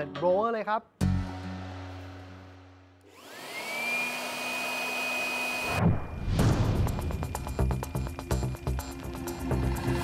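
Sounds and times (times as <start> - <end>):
electric blower motor whine: 3.0 - 5.8.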